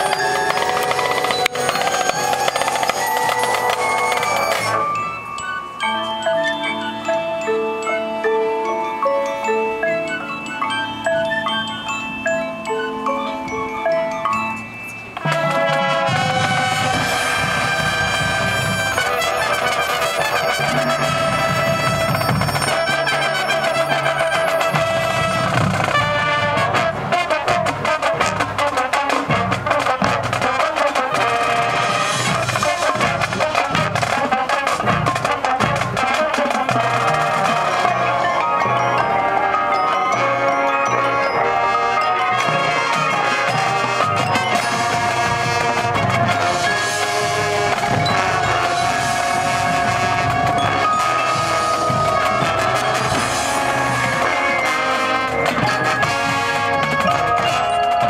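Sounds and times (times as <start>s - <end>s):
marching drums: 0.0s - 5.1s, 15.2s - 58.0s
marching showband brass: 0.0s - 12.2s, 15.2s - 58.0s
mallet percussion: 0.0s - 58.0s.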